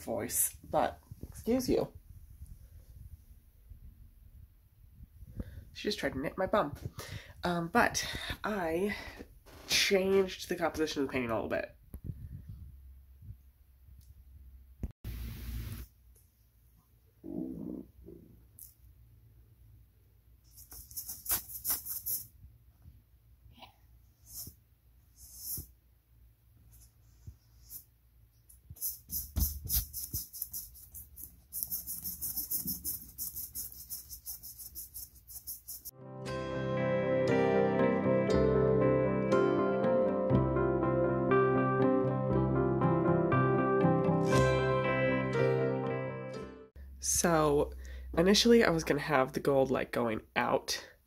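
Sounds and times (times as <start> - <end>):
paintbrush scrubbing on canvas: 20.4 - 22.4, 24.2 - 25.8, 28.8 - 35.9.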